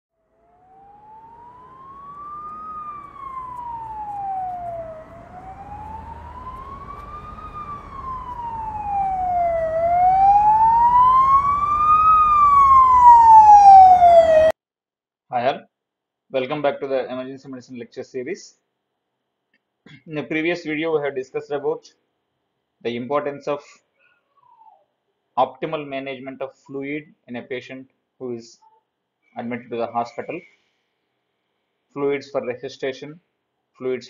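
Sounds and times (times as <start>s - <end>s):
emergency vehicle siren wailing: 0.2s - 14.6s.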